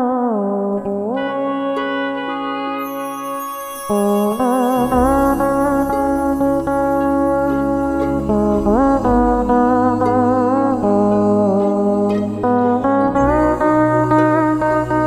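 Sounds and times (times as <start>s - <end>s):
monochord melody with sliding pitch: 0.1s - 15.0s.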